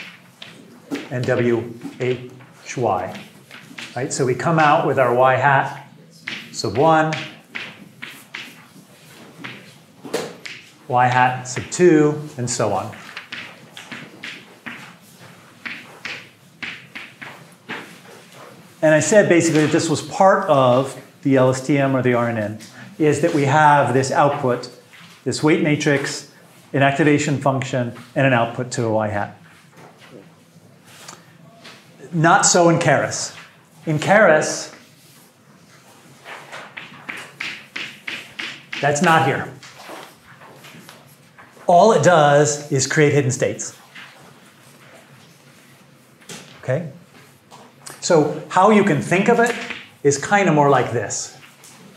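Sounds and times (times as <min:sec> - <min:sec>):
chalk strokes on blackboard: 0:06.2 - 0:09.8.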